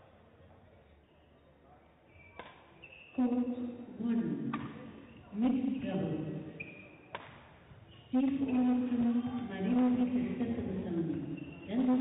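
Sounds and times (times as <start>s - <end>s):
voices in a large hall: 0.0s - 12.0s
high squeak: 6.5s - 7.1s, 11.2s - 11.8s
racket hitting shuttlecock: 7.1s - 7.4s.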